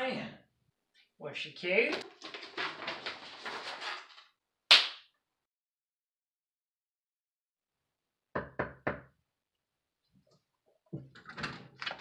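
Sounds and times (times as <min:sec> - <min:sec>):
knocks on a door: 0:08.4 - 0:09.1.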